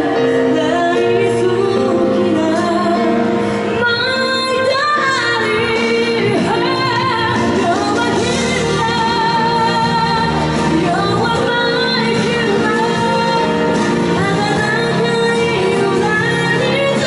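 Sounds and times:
instrumental accompaniment: 0.0 - 17.0
woman singing pop song: 0.0 - 17.0.

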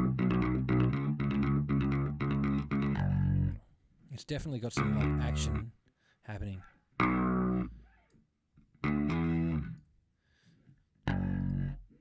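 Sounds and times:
picked bass guitar notes: 0.0 - 3.7, 4.7 - 5.8, 7.0 - 8.1, 8.7 - 9.9, 11.0 - 12.0.

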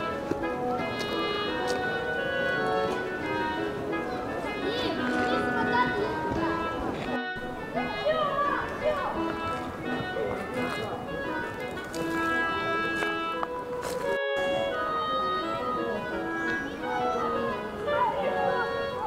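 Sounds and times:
music of long held notes: 0.0 - 19.0.

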